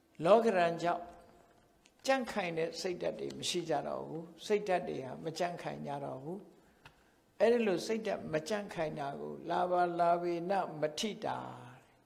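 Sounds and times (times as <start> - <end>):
man chanting: 7.4 - 11.9.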